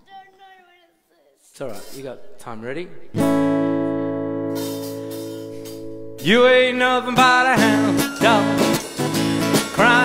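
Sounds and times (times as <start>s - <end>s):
acoustic guitar chord ringing: 3.2s - 10.0s.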